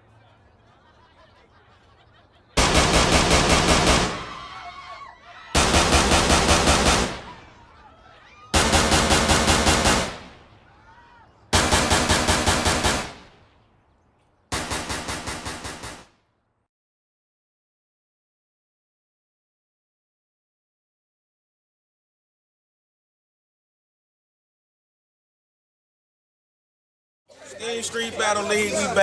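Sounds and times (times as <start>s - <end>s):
automatic gunfire bursts: 2.6s - 4.3s, 5.6s - 7.3s, 8.6s - 10.3s, 11.5s - 13.3s, 14.5s - 16.1s.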